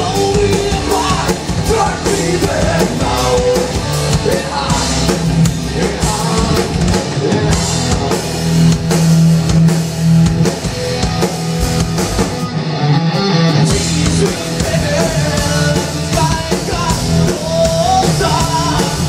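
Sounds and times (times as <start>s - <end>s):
drum kit: 0.0s - 19.0s
electric guitars: 0.0s - 19.0s
sustained bass line: 0.0s - 19.0s.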